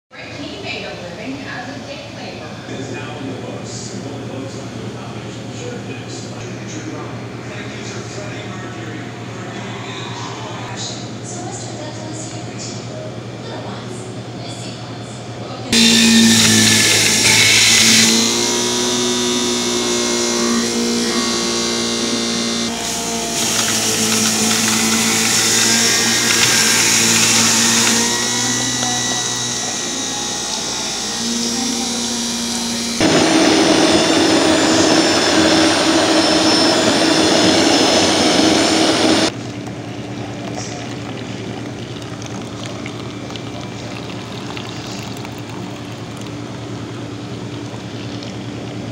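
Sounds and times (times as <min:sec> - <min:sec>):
blender motor running: 0:15.7 - 0:39.4.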